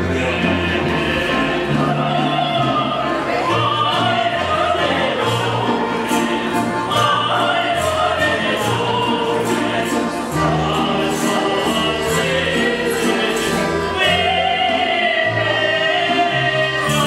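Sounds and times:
choir singing: 0.0 - 17.0.

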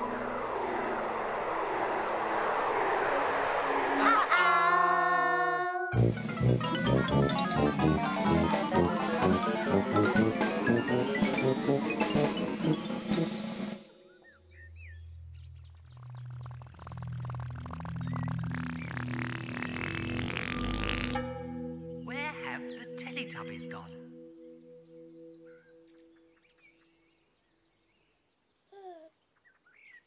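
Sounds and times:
rising hissing whoosh: 0.0 - 5.1
bouncy children's music: 5.9 - 13.9
high chirps: 14.0 - 26.4
slow low held notes: 14.7 - 26.3.

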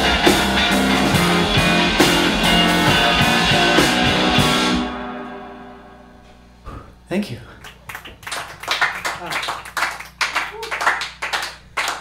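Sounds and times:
small audience applauding: 7.6 - 12.0.

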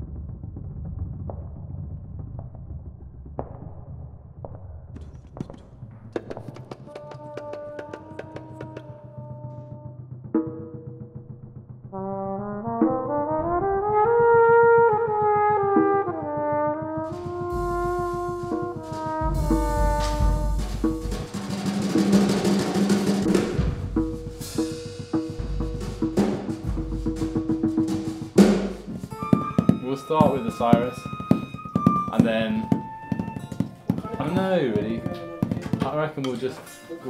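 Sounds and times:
taps and knocks: 5.0 - 9.0, 29.1 - 36.6
low drum beats: 5.4 - 9.5, 12.7 - 36.4
drum roll: 6.0 - 9.8, 12.6 - 36.5
brass chords: 6.9 - 10.0, 11.9 - 37.0.

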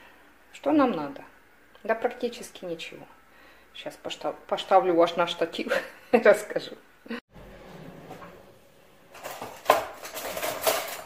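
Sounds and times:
objects clattering and rattling: 7.4 - 11.0.

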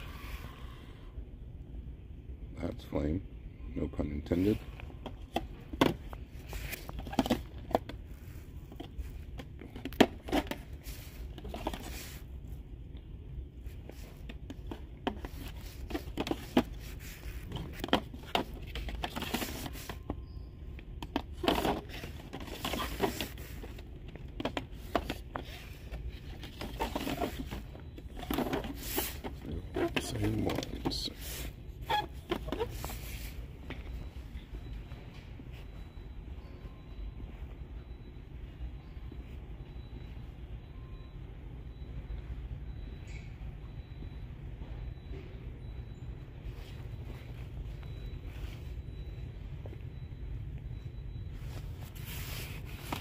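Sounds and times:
low store hum: 0.0 - 53.0.

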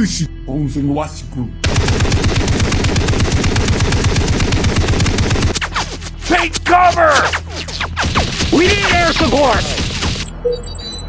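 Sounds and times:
machine-gun fire: 1.6 - 10.3.

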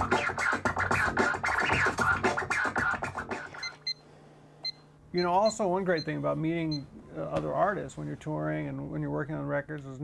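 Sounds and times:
record scratching over beat: 0.0 - 3.8.

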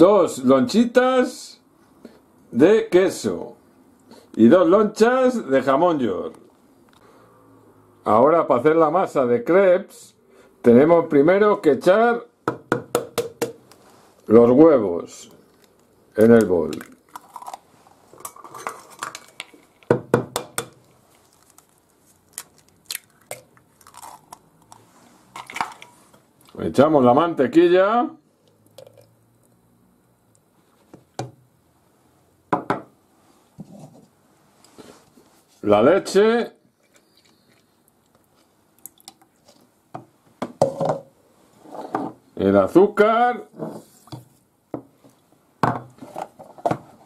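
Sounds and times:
eggshells cracking: 15.5 - 19.9, 20.6 - 24.8
plastic jug knocking on countertop: 32.5 - 32.9.

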